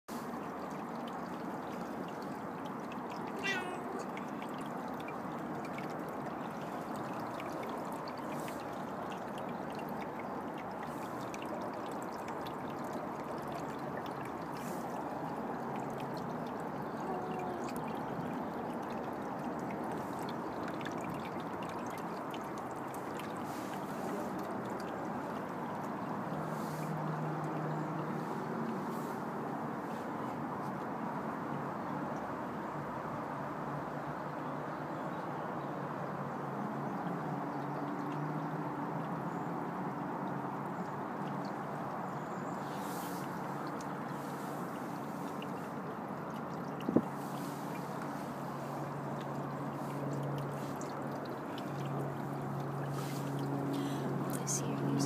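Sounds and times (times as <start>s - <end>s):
cat meowing: 3.4s - 4.1s, 17.0s - 17.7s.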